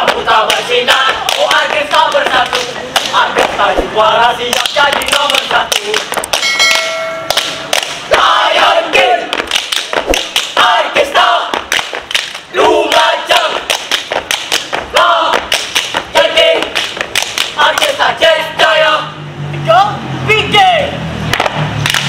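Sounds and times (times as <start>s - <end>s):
boys chanting and singing: 0.0s - 6.4s, 7.7s - 21.0s
rhythmic stomps and claps: 0.0s - 18.3s, 21.3s - 22.0s
short steady tone: 6.4s - 7.7s.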